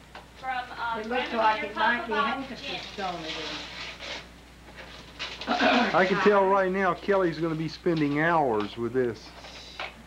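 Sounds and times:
wrapping paper rustling: 2.7s - 6.0s.

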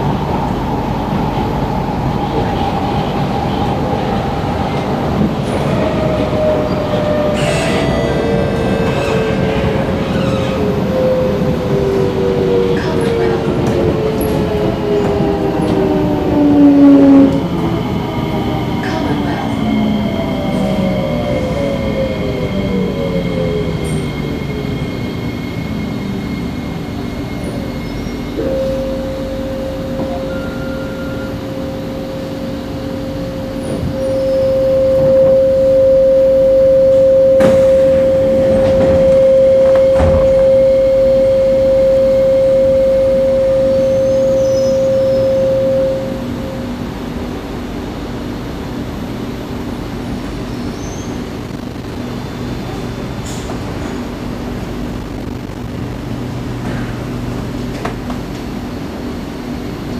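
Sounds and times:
rumbling wheel and rail noise: 0.0s - 59.9s
train traction motors whining: 2.4s - 59.9s
steady high whine: 14.8s - 59.9s.

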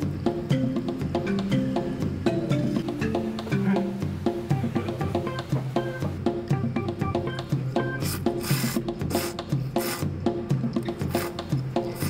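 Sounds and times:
music with plucked beat: 0.0s - 12.0s
noodles being slurped: 8.0s - 10.0s.

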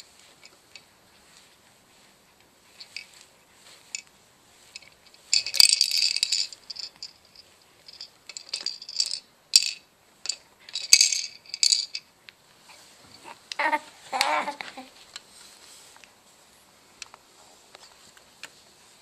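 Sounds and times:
plastic baby toys rattling: 4.7s - 12.1s.

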